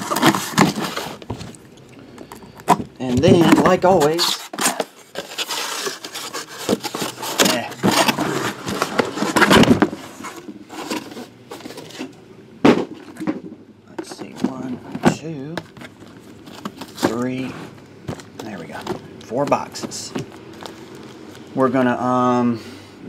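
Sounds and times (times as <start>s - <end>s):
boxes scraping and rustling: 0.0s - 1.6s, 2.2s - 22.3s.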